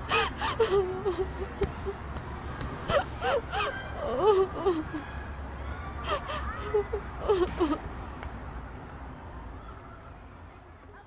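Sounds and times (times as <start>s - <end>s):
woman sobbing: 0.0s - 2.0s, 2.9s - 5.0s, 6.0s - 7.8s.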